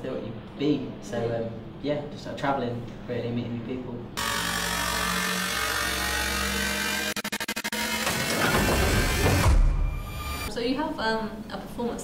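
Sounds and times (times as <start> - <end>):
harsh electronic noise: 4.2 - 10.5.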